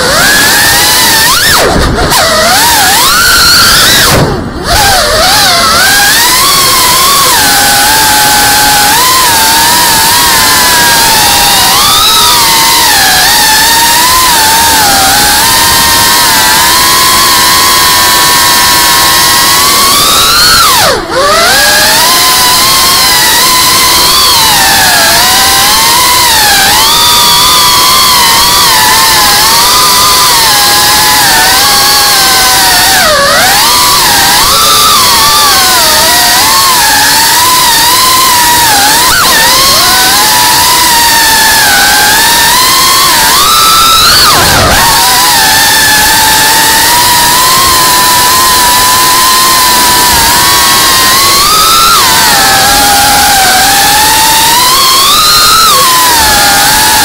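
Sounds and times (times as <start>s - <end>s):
drone motors whining: 0.0s - 57.0s.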